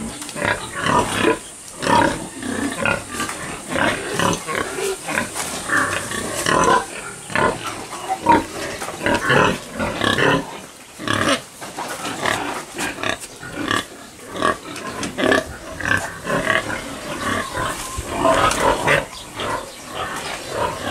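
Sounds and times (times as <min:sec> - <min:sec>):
pigs grunting: 0:00.0 - 0:20.9.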